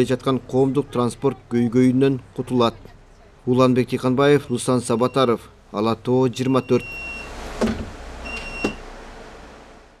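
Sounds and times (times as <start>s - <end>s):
low hum of bus interior: 0.0s - 10.0s
high electronic beep: 6.5s - 7.3s
bus door thump: 6.8s - 8.9s.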